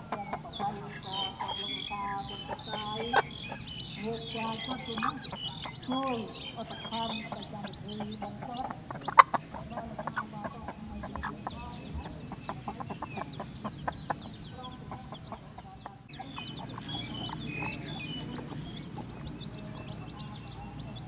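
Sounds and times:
chicks peeping: 0.0 - 21.0
hen clucking: 0.0 - 21.0.

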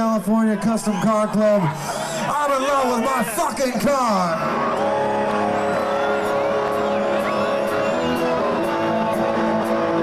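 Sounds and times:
distorted electric guitar chords: 4.4 - 10.0.

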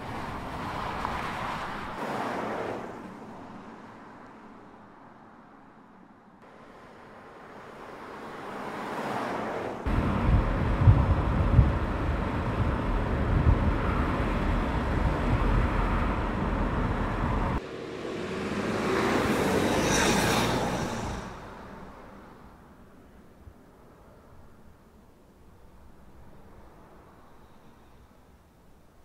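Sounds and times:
car driving by: 6.7 - 22.6.

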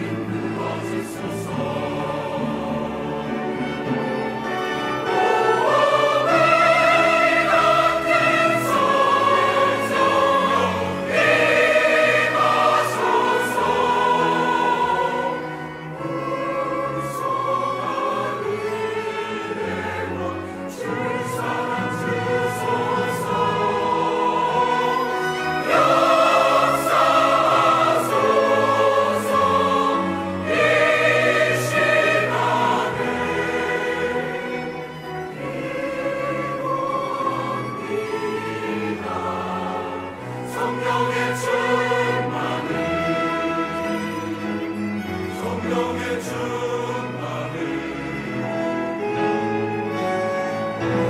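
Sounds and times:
chamber orchestra: 0.0 - 51.0
mixed choir singing a hymn: 0.0 - 51.0.

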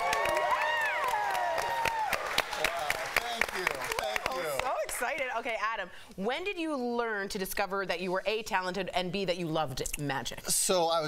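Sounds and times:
cheering whoops: 0.0 - 2.5
people clapping: 0.0 - 5.3.

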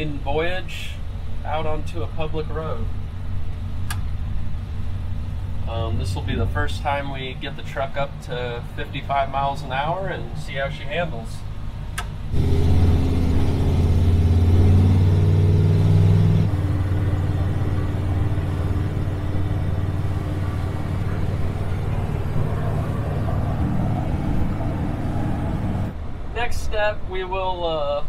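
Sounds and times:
engine heard from inside cab: 0.0 - 26.0
road noise: 0.0 - 28.0.

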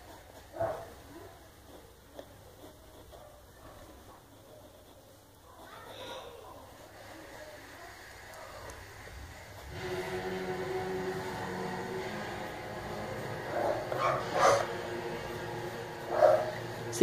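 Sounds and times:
background drone with held tones: 8.7 - 17.0
dog barking: 13.5 - 14.7, 16.1 - 16.6.

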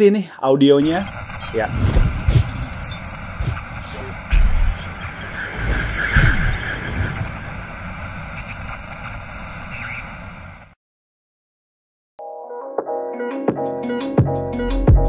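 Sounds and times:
high gliding chirps: 2.4 - 8.0.

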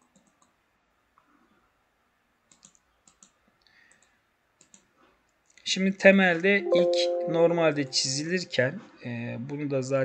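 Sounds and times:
computer mouse clicks: 0.0 - 0.6, 2.4 - 5.6.

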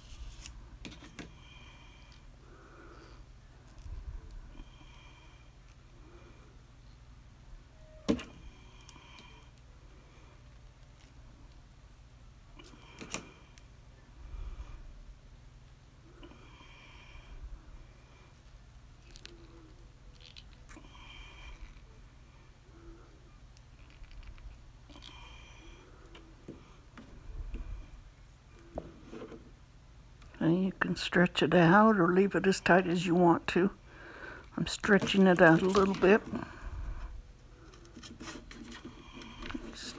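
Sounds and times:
wire clicking and scraping: 37.6 - 39.9.

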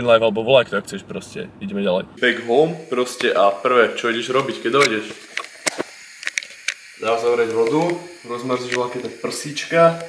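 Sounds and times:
faint hiss: 2.2 - 10.0.

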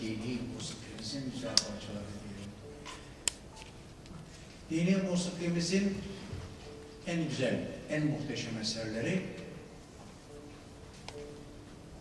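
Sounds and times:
man speaking into microphone: 0.0 - 2.6, 4.7 - 6.4, 7.0 - 9.7.

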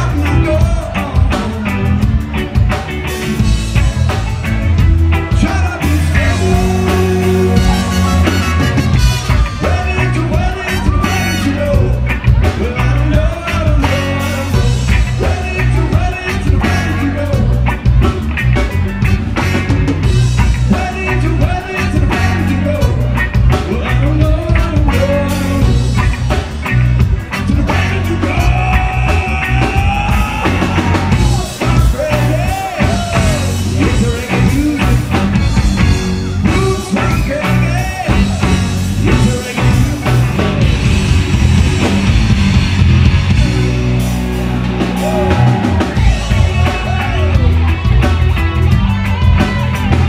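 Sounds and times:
person singing: 0.0 - 2.2, 5.3 - 18.9, 20.1 - 26.4, 27.3 - 40.8, 44.9 - 48.1
bass: 0.0 - 50.0
drums: 0.0 - 50.0
lead melody: 0.0 - 50.0
rock band playing: 0.0 - 50.0.

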